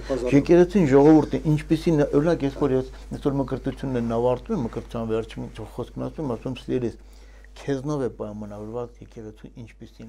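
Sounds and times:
man talking: 0:00.0 - 0:07.0, 0:07.6 - 0:10.0.

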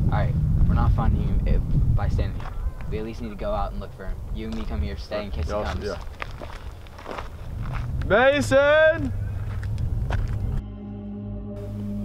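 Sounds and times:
footsteps on dirt and gravel: 0:02.3 - 0:03.0, 0:04.3 - 0:10.6.

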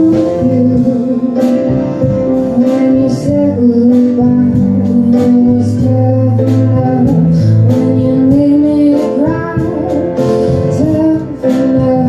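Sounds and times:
grand piano: 0:00.0 - 0:12.0
woman singing: 0:00.0 - 0:12.0.

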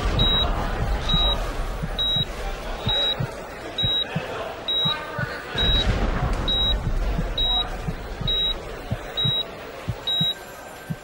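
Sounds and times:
electronic beeper beeping: 0:00.0 - 0:11.0
murmur of voices: 0:00.0 - 0:11.0.

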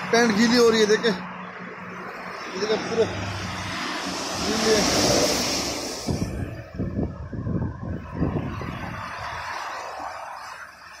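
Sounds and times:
tyres hissing on wet road: 0:01.8 - 0:07.0, 0:08.1 - 0:11.0.

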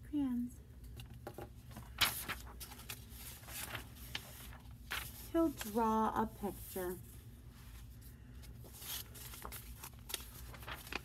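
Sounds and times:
low room hum: 0:00.0 - 0:11.0
paper pages rustling: 0:00.9 - 0:11.0.

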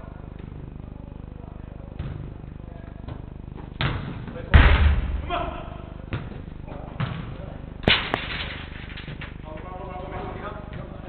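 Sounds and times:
football struck hard: 0:03.8 - 0:06.4.

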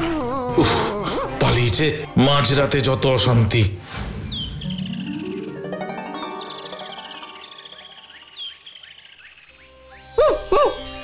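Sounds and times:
cartoon dog crying: 0:00.0 - 0:01.4
cartoon background music: 0:00.0 - 0:11.0.

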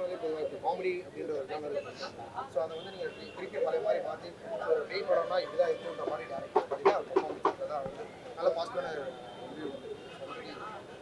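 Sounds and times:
indistinct voices talking: 0:01.3 - 0:11.0.

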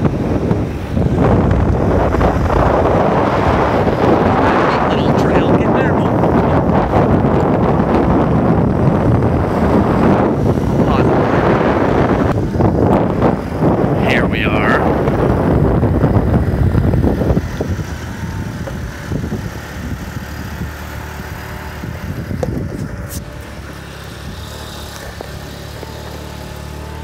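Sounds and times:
moped engine running: 0:00.0 - 0:27.0
wind noise on microphone: 0:00.0 - 0:27.0.

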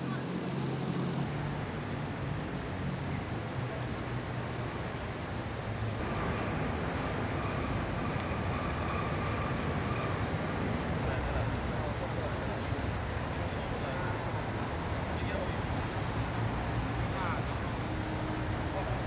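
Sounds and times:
street traffic rumble: 0:00.0 - 0:19.0.

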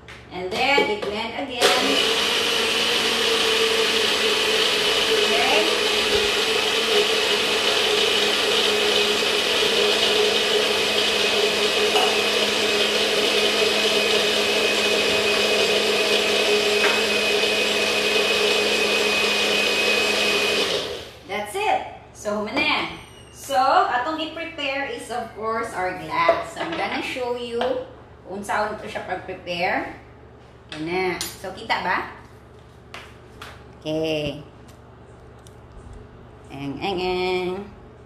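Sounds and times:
blender crushing ice: 0:01.6 - 0:21.2.

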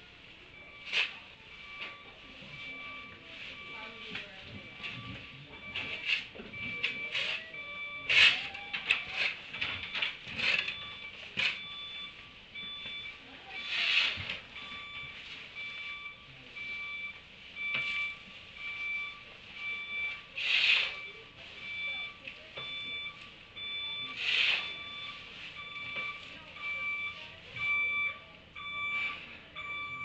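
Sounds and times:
vehicle reversing alarm beeping: 0:00.0 - 0:30.0.

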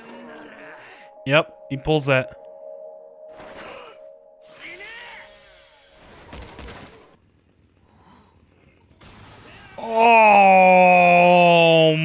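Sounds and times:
soundtrack music: 0:00.0 - 0:06.9.

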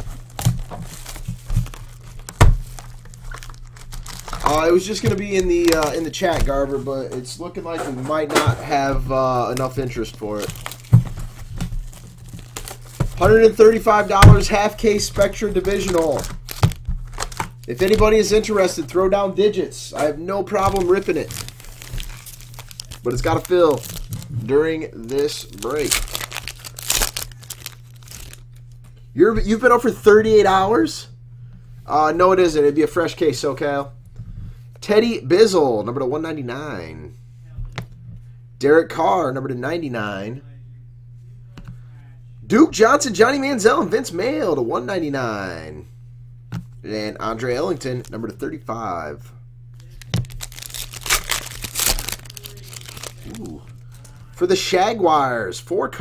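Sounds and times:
wrapper crinkling and tearing: 0:00.0 - 0:06.8, 0:09.5 - 0:18.8, 0:20.5 - 0:28.8, 0:49.8 - 0:54.1.

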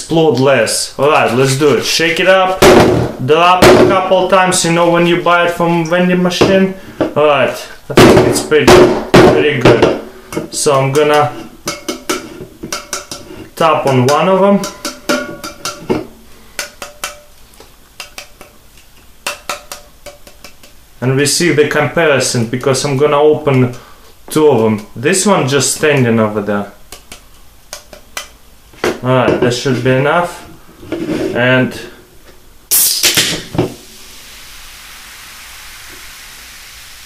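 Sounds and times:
fingertips tapping metal can: 0:10.4 - 0:17.3, 0:18.0 - 0:20.8, 0:26.9 - 0:28.4
gas bursting from opened cans: 0:32.7 - 0:37.0
soda fizzing: 0:32.7 - 0:37.0.

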